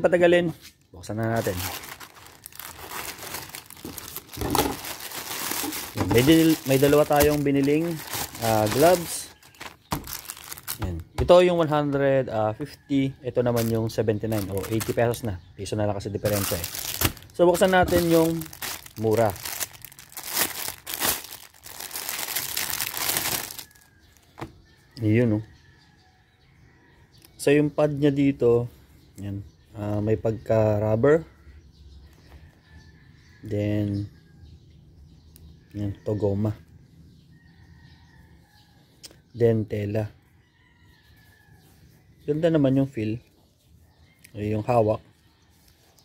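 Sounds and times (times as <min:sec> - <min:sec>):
plastic bag crinkling: 0:01.2 - 0:11.0, 0:13.5 - 0:15.2, 0:16.2 - 0:23.9.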